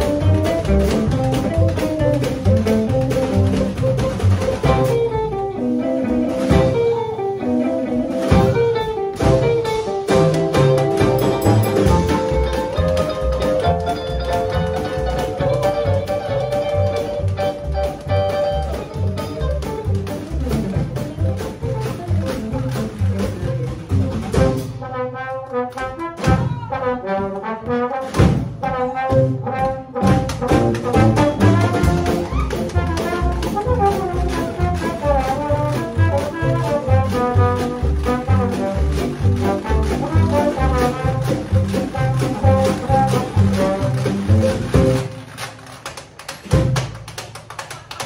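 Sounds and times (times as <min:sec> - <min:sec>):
band rhythm section: 0:00.0 - 0:48.0
sharp percussion taps: 0:08.3 - 0:24.3
trombone melody: 0:09.4 - 0:19.6, 0:24.2 - 0:45.2.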